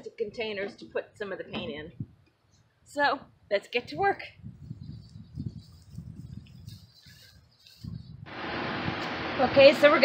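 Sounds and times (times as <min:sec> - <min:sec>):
wind on microphone: 0:01.5 - 0:02.2, 0:03.2 - 0:09.6.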